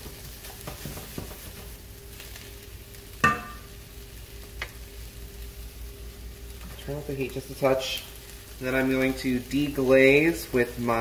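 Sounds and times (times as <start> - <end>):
vegetables sizzling in a pan: 0.0 - 11.0
sharp ringing knock: 3.2 - 3.6.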